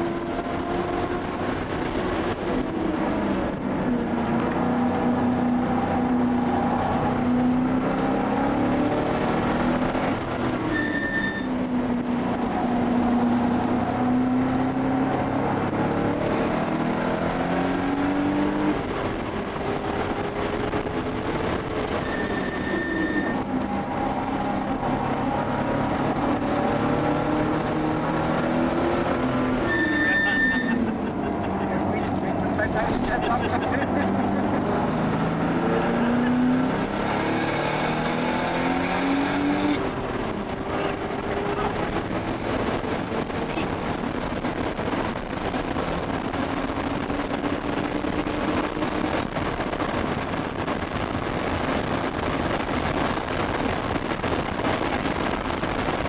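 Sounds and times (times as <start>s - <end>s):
car engine revving through gears: 0.0s - 56.0s.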